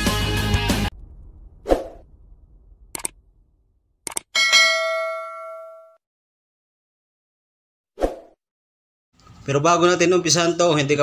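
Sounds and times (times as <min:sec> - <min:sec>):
notification bell ding: 0:04.4 - 0:06.0.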